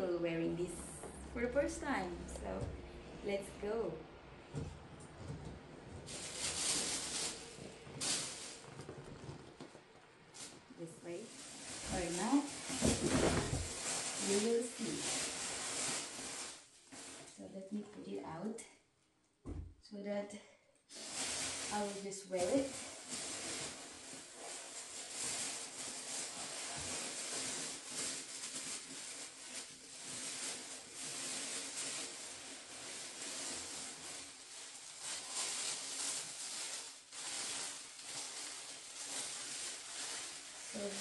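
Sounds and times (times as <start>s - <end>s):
packing paper rustling: 5.0s - 17.4s, 20.9s - 41.0s.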